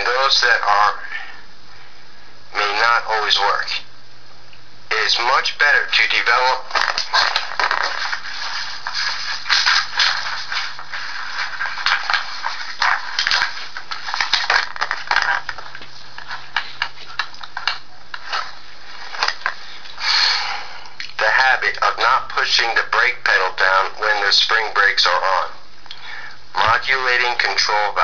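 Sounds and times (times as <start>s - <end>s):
paper rustling and scraping: 6.6s - 19.8s.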